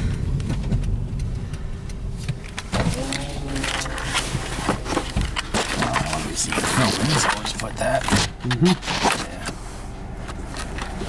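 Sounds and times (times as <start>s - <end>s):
irregular clicks and knocks: 0.0s - 9.6s
car engine and road rumble: 0.0s - 11.0s.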